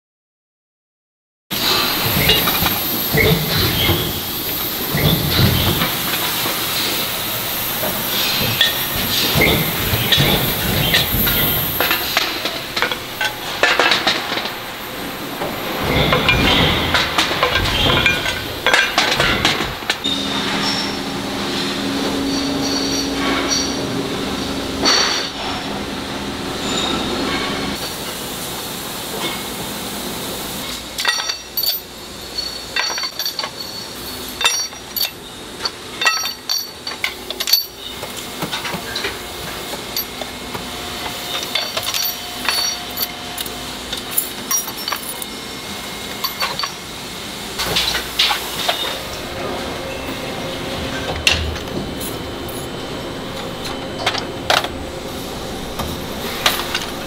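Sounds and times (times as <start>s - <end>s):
machinery rumble: 1.6s - 29.0s, 34.4s - 57.0s
metallic rings and clinks: 41.5s - 43.5s, 44.1s - 45.3s.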